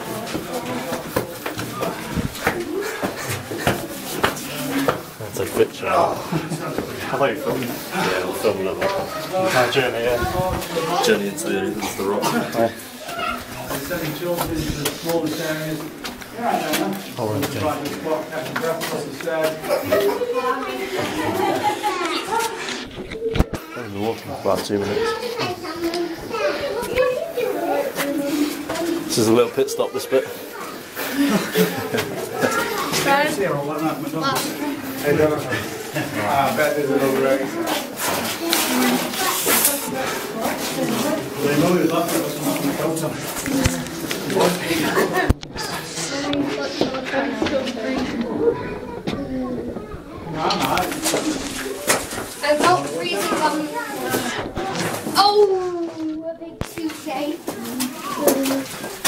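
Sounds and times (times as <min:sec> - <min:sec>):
indistinct voices talking: 0:00.0 - 0:59.0.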